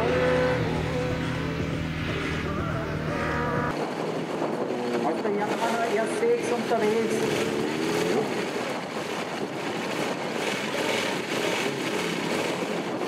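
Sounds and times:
racing motorcycle engine revving: 0.0 - 3.8, 6.6 - 8.4.

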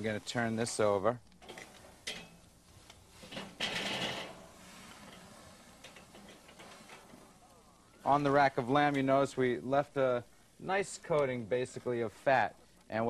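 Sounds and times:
faint low hiss: 0.0 - 13.0.

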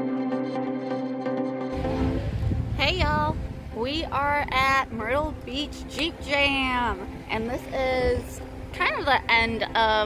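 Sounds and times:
wind on microphone: 1.8 - 9.8
woman speaking: 2.8 - 10.0.

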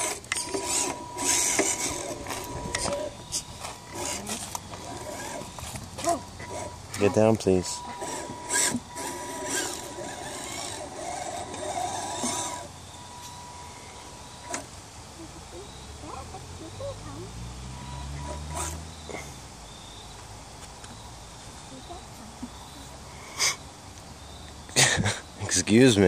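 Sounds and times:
rc car motor and gears: 0.0 - 14.7, 15.6 - 19.3.

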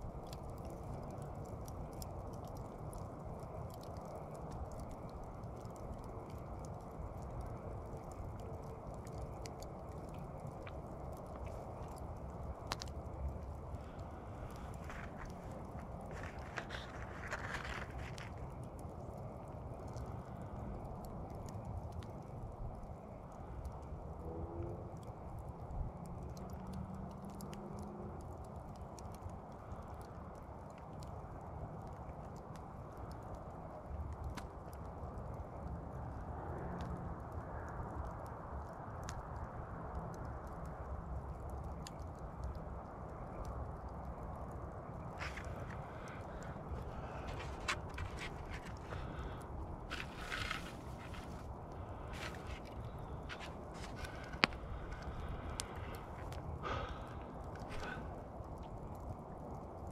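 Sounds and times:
embers crackling: 0.0 - 59.9
outdoor background noise: 0.0 - 59.9.

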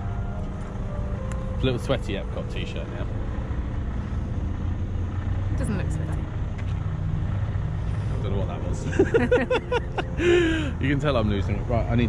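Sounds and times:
vehicle engine idling: 0.0 - 12.0.

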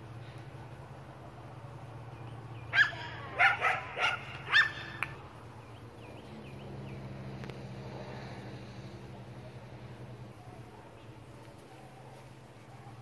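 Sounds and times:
steady low hum: 0.0 - 13.0
dog barking: 2.7 - 5.0, 11.6 - 13.0.

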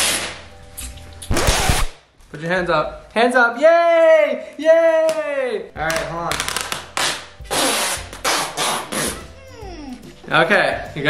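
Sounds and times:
packing tape pulled off roll: 0.0 - 2.0, 5.9 - 9.2.

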